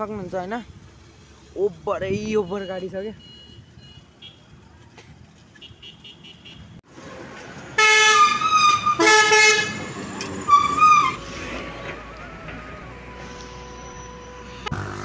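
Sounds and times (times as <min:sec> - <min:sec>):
street traffic noise: 0:00.0 - 0:15.0
vehicle horns honking: 0:02.4 - 0:04.5, 0:05.6 - 0:06.8, 0:07.8 - 0:11.2.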